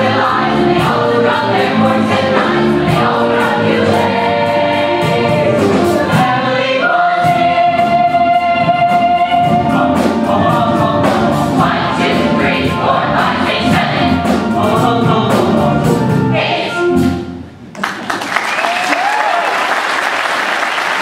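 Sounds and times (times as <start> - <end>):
chorus singing with music: 0.0 - 17.4.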